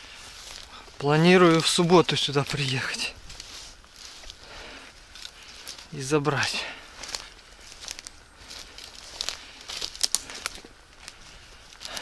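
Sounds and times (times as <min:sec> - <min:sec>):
footsteps crunching on pine needles: 0:00.0 - 0:12.0.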